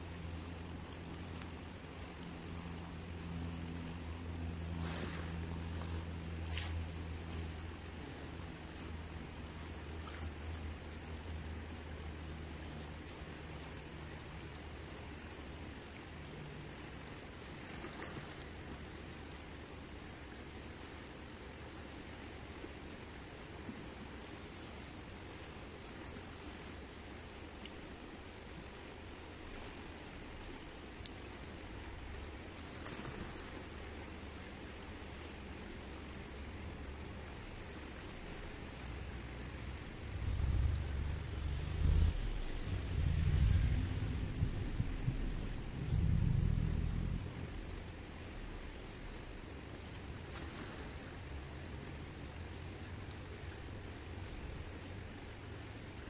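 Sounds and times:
fast river rushing: 33.5s - 56.0s
wind rumbling on microphone: 36.2s - 55.0s.

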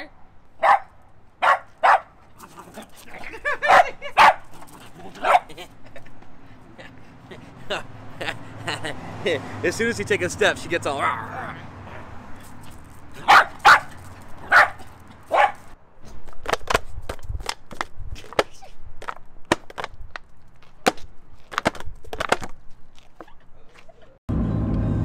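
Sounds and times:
small dog barking: 0.6s - 2.1s, 3.6s - 4.5s, 5.1s - 5.5s, 13.2s - 15.7s.

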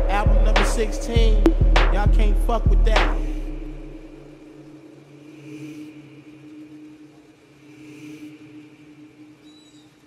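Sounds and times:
low pulsing electronic drone: 0.0s - 9.4s.

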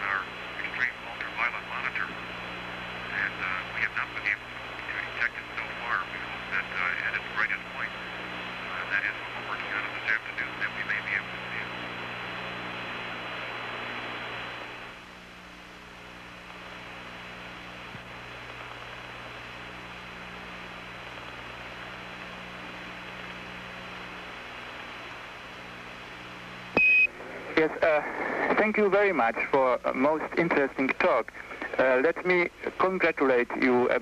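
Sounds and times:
radio channel hiss: 0.0s - 34.0s.

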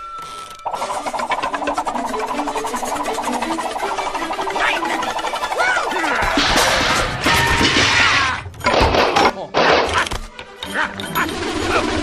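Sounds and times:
bamboo stalks creaking: 0.0s - 6.4s
low film score notes: 0.6s - 8.6s.

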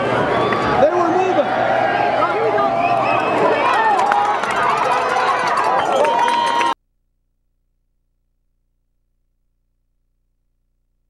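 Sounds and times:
crowd shouting and cheering: 0.0s - 6.8s
sharp claps: 3.6s - 6.8s.

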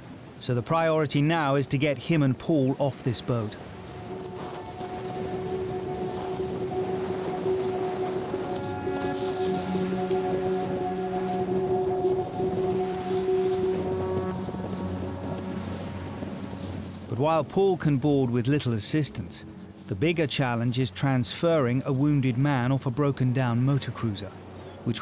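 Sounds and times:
wind and sea rushing: 0.0s - 25.0s
music of long held chords: 2.9s - 20.8s.

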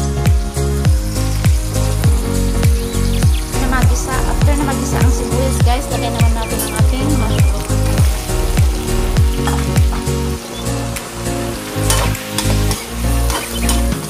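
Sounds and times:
music with heavy bass-drum beat: 0.0s - 14.0s
vegetables sizzling in oil: 0.0s - 14.0s.

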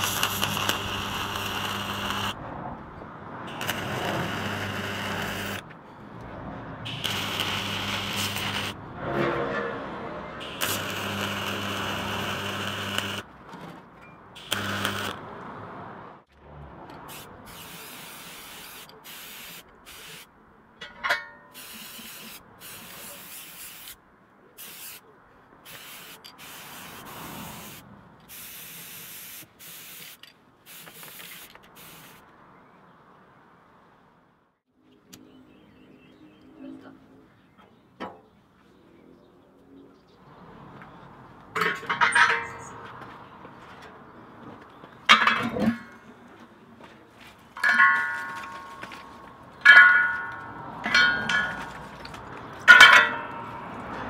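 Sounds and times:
welder humming: 0.0s - 2.4s, 3.5s - 5.6s, 6.9s - 8.8s, 10.4s - 13.3s, 14.4s - 15.2s
spray can hissing: 17.1s - 20.3s, 21.6s - 24.0s, 24.6s - 25.0s, 25.7s - 32.2s.

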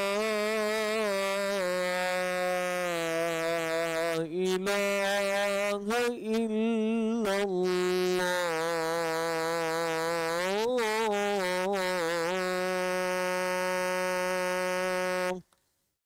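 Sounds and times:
man chanting: 0.0s - 15.4s.

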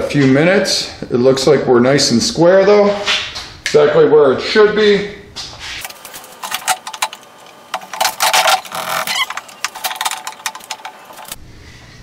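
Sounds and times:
metal tool rest clattering: 5.8s - 11.4s
sharp clicks and rattles: 5.8s - 11.4s.

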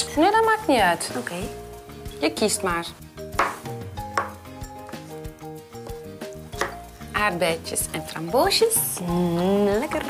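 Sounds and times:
light background music: 0.0s - 10.0s
knife knocking on cutting board: 3.4s - 4.4s.

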